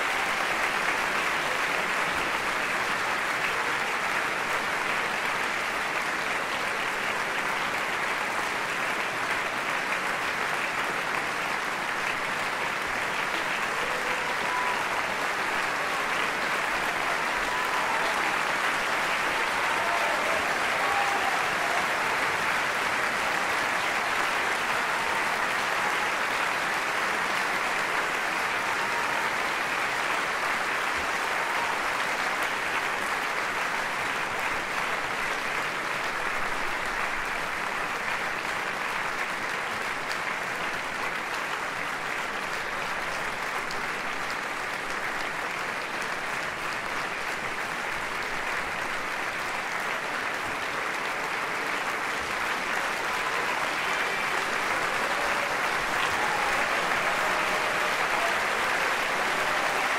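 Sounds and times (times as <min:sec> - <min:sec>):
audience applauding: 0:00.0 - 0:59.9.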